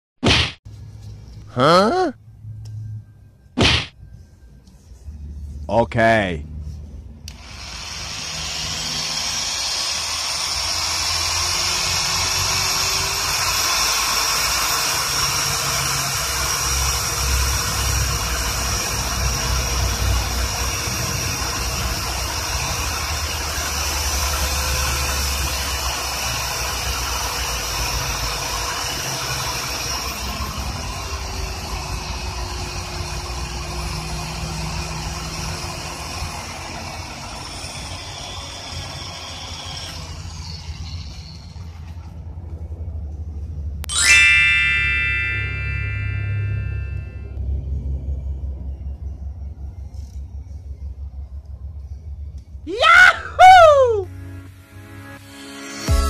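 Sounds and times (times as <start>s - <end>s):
small electric motor whine: 6.8s - 42.0s.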